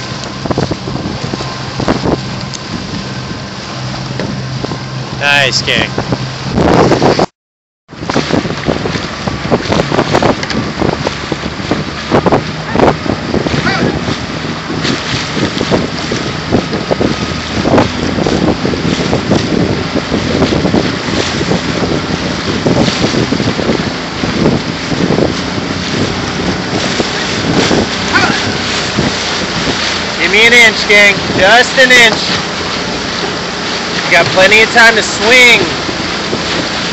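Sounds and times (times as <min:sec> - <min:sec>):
paddle splashes and knocks: 0:00.0 - 0:05.0, 0:08.0 - 0:36.9
wind buffeting microphone: 0:00.0 - 0:07.3, 0:07.9 - 0:36.9.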